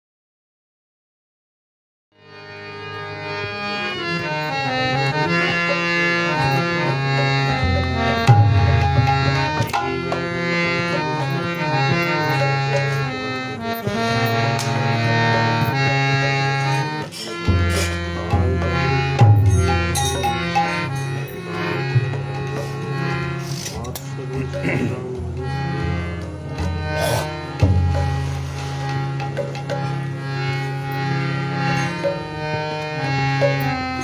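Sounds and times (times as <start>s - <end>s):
harmonium melody over chords: 2.2s - 34.0s.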